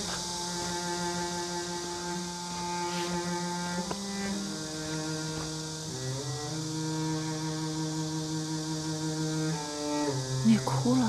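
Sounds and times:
soft sustained chords: 0.0s - 11.0s.

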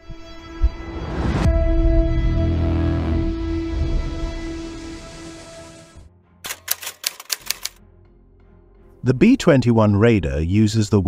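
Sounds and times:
typewriter keystroke clicks: 6.5s - 7.8s.

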